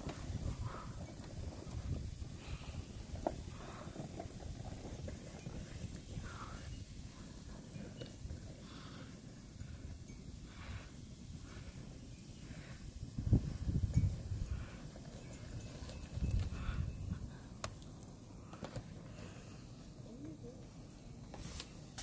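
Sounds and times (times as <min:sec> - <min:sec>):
wind buffeting microphone: 0:00.0 - 0:18.2.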